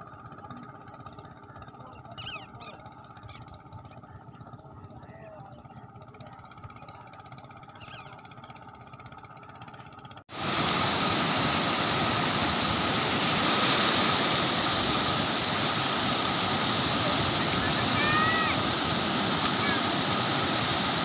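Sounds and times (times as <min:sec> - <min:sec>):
water rushing through gates: 0:10.3 - 0:21.0.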